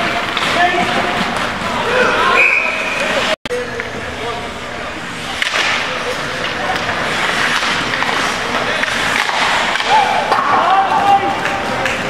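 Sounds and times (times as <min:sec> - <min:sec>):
skates scraping ice: 0:05.2 - 0:12.0.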